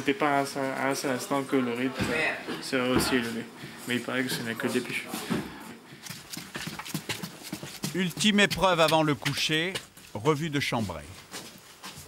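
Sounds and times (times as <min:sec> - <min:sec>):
boots climbing stairs: 0:05.2 - 0:12.0.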